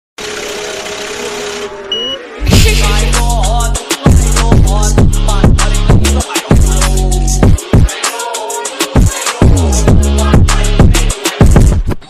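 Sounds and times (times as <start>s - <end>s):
short high beep: 1.9s - 3.1s.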